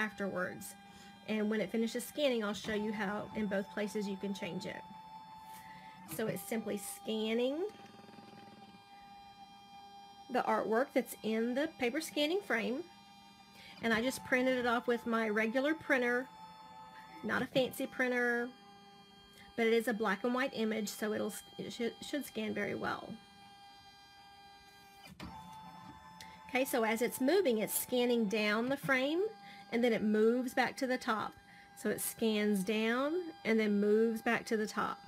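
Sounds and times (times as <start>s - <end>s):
embroidery machine whirring: 0.0s - 35.0s
faint motor whine: 0.0s - 35.0s.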